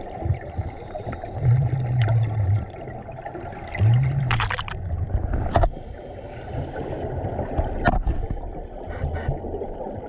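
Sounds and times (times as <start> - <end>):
underwater rumble: 0.0 - 10.0.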